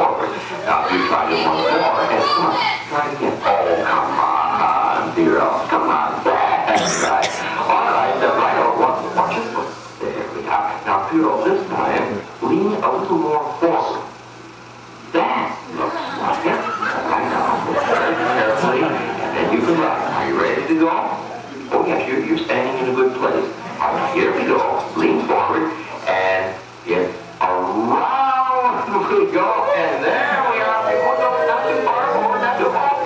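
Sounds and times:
indistinct voices: 0.0s - 14.2s, 15.2s - 33.0s.

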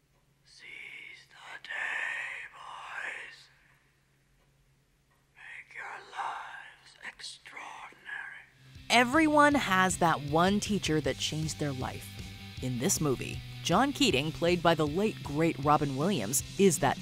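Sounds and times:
faint low hum: 0.0s - 8.6s
man whispering: 0.4s - 3.6s, 5.3s - 8.6s.

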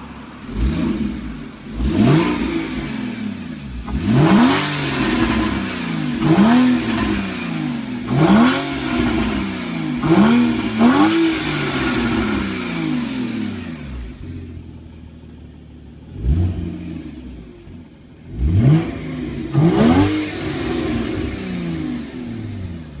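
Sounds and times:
car engine revving: 0.0s - 23.0s.

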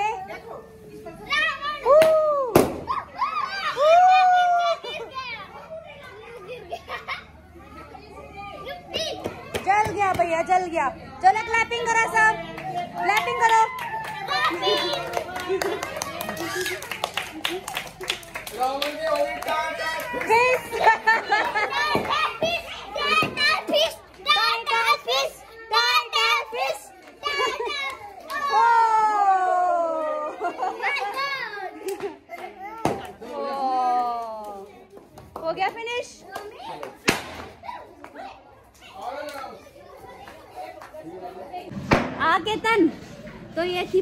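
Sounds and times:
children calling and chattering: 0.0s - 44.0s.

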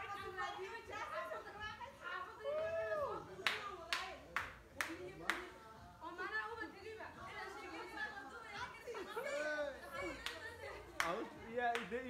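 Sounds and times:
sharp hand claps: 3.4s - 5.6s, 10.2s - 12.0s.

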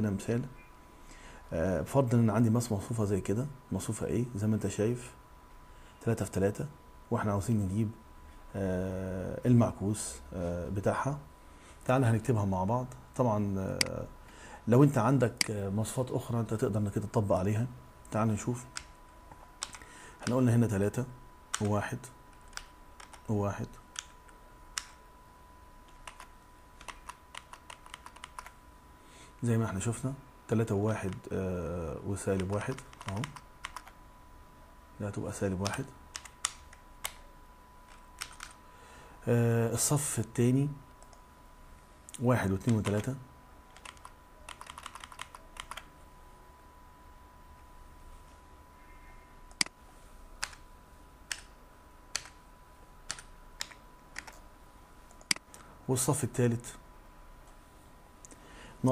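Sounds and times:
faint high hum: 0.0s - 58.9s
keyboard keystrokes: 22.4s - 23.3s, 25.9s - 28.6s, 32.4s - 33.9s, 35.6s - 37.2s, 37.9s - 38.6s, 43.7s - 45.9s, 50.4s - 50.6s, 52.1s - 52.4s, 53.1s - 54.4s
faint high tone: 48.7s - 49.5s.

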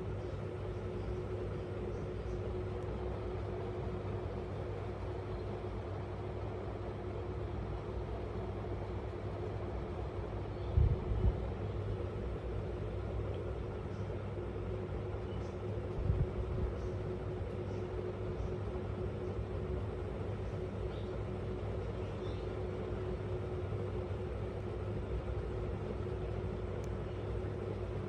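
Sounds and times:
faint hum: 0.0s - 28.0s
low background rumble: 0.0s - 28.0s.

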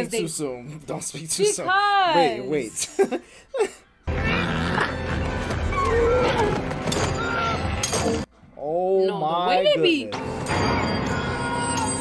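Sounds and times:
growling creature sounds: 4.1s - 5.3s.

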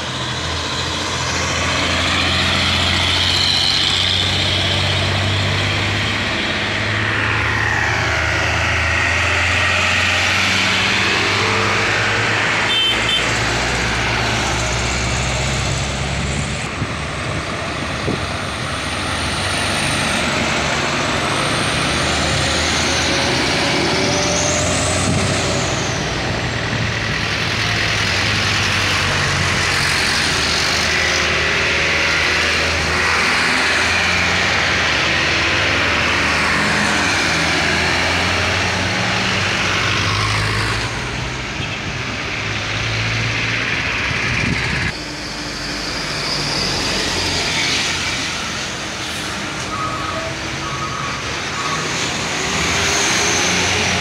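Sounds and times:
diesel trucks passing: 0.0s - 54.0s.

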